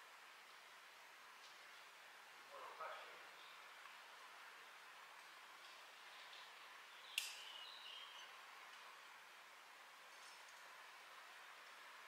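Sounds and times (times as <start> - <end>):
faint outdoor hiss: 0.0 - 12.0
sharp click: 7.1 - 7.5.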